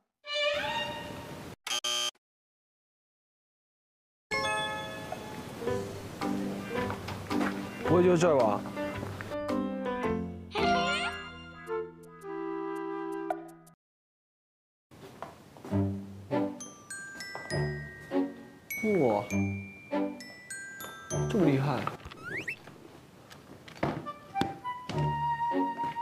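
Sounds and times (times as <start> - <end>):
background music: 4.3 - 13.7, 15.7 - 21.9, 23.9 - 26.0
bright shimmering chime: 16.6 - 21.8
short rising squeak: 22.1 - 22.7.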